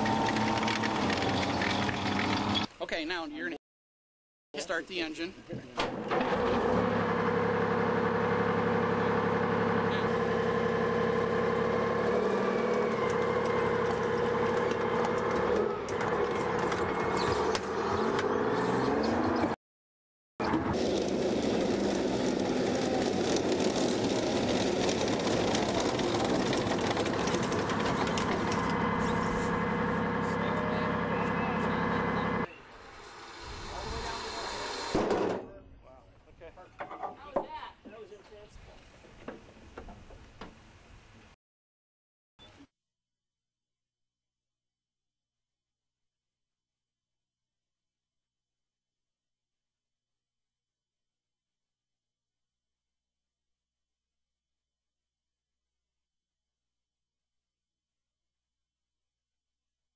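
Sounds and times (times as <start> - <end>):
diesel engine running: 6.1 - 19.5, 20.5 - 35.0
rattling track noise: 20.8 - 32.4.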